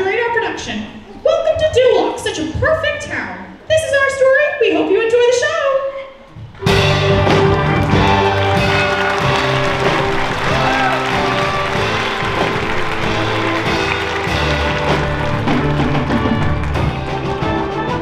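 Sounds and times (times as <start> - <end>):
percussion hits: 6.4 - 18.0
pit band holding chords: 6.6 - 18.0.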